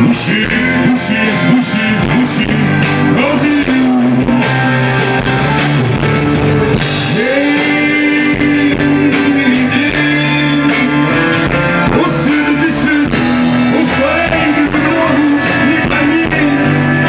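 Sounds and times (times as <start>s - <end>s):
rock band with horn section: 0.0s - 17.0s.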